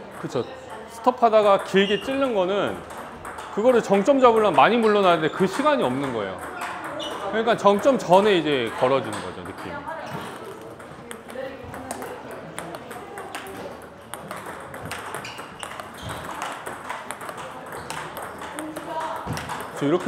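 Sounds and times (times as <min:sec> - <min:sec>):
table tennis balls clicking: 0:00.0 - 0:20.0.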